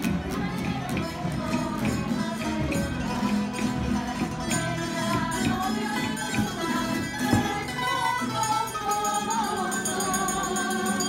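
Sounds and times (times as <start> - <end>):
group of voices singing: 0.0 - 11.0
strummed lutes and guitars: 0.0 - 11.0.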